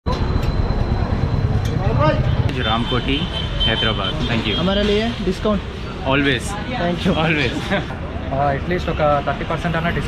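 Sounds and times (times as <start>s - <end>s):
street traffic rumble: 0.1s - 10.0s.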